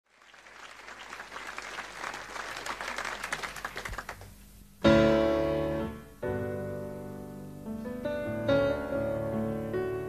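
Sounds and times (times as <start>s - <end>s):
audience applauding: 0.1s - 4.4s.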